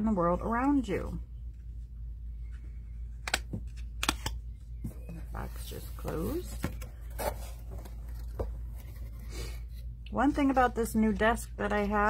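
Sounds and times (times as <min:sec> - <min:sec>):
low steady hum: 0:00.0 - 0:12.0
paper and cardboard rustling: 0:04.8 - 0:12.0.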